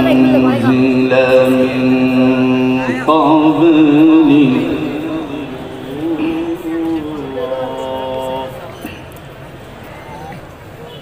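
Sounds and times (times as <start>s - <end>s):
man reciting melismatic chant: 0.0s - 8.9s.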